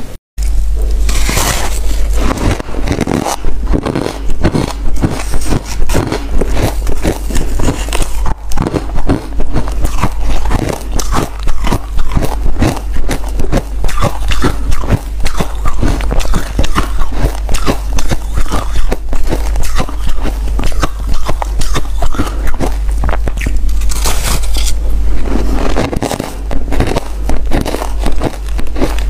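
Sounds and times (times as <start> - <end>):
low hum: 0.0 - 29.0
crunching frost: 1.0 - 29.0.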